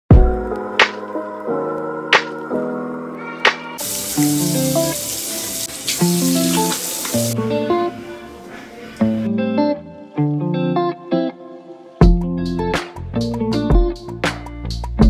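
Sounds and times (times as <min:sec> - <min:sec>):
running tap water: 0:03.7 - 0:08.4
plucked guitar-like music: 0:06.0 - 0:15.0.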